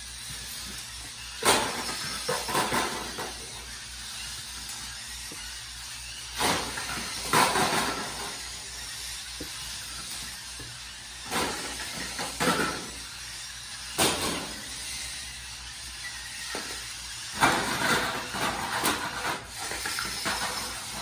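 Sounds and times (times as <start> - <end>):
robot motors whirring: 0.0 - 21.0.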